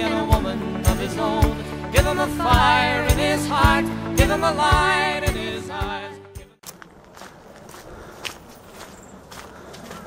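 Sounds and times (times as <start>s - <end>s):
man singing with backing music: 0.0s - 6.5s
footsteps: 6.6s - 10.0s.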